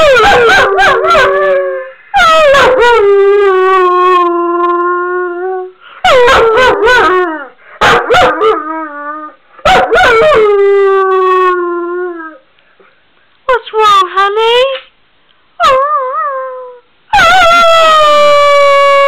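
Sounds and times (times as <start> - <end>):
dog howling: 15.6 - 19.0.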